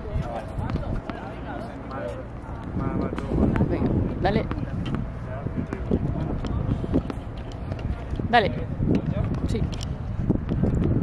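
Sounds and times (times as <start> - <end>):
low outdoor rumble: 0.0 - 11.0
tennis balls struck by rackets: 0.2 - 2.0, 2.6 - 10.7
balls bouncing on hard court: 0.6 - 1.3, 2.6 - 8.2.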